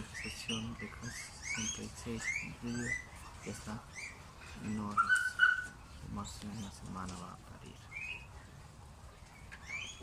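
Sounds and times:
high-pitched animal chirps: 3.9s - 5.8s.

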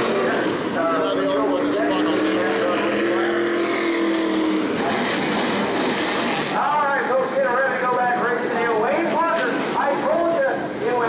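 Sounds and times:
race car engine running: 0.0s - 6.6s.

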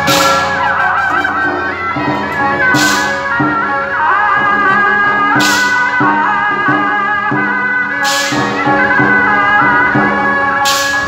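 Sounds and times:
cymbal crash: 0.0s - 3.8s, 10.0s - 11.0s
drum and gong strokes: 0.0s - 11.0s
shrill suona melody: 0.0s - 11.0s.

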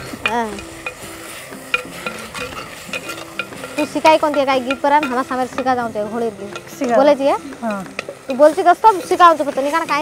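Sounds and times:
leaves sizzling: 0.0s - 10.0s
spoon scraping clay pot: 0.6s - 10.0s.

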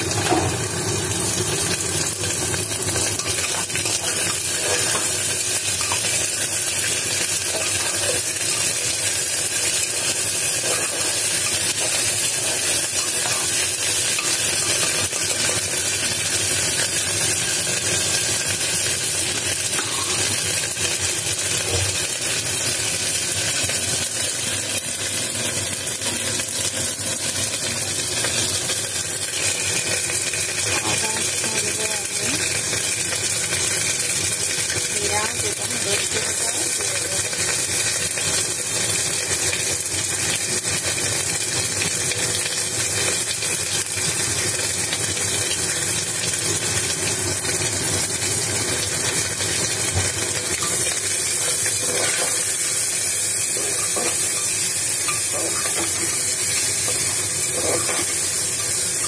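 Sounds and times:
potato sticks sizzling in oil: 0.0s - 59.0s
stirring scrapes in pot: 50.6s - 52.6s, 56.9s - 58.2s.

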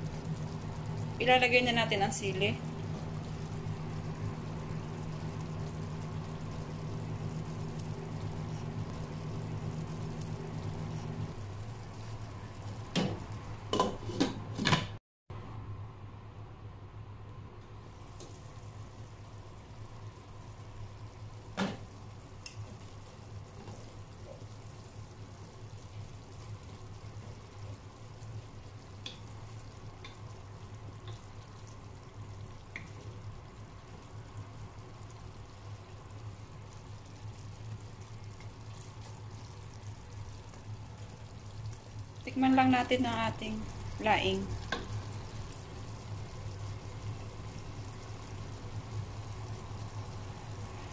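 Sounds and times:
low hum: 0.0s - 13.7s
soft bubbling of simmering pot: 0.0s - 15.0s, 17.4s - 50.9s.

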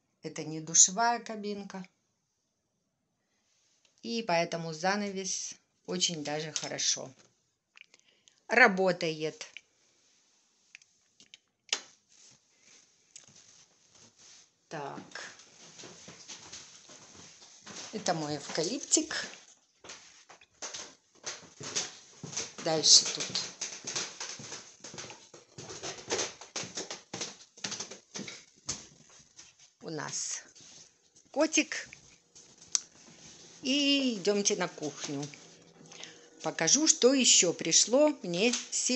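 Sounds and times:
soft scuffing footsteps: 11.8s - 36.5s
cat rustling: 11.9s - 36.6s.

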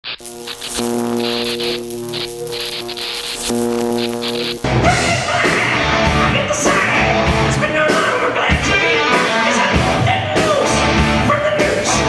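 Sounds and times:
high hiss bursts: 0.0s - 7.0s
amplifier electric buzz: 0.0s - 7.5s.

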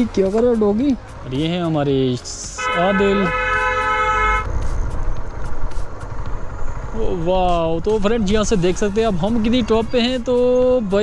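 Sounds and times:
motorcycle wind and road noise: 0.0s - 11.0s
vehicle horn blast: 2.4s - 4.5s.

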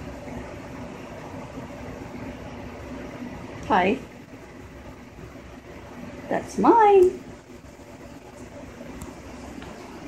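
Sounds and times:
background hiss and hum: 0.0s - 10.0s.

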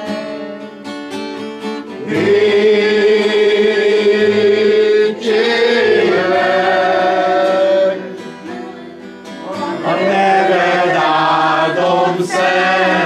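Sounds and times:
group singing slow song: 0.0s - 1.0s, 1.8s - 13.0s.

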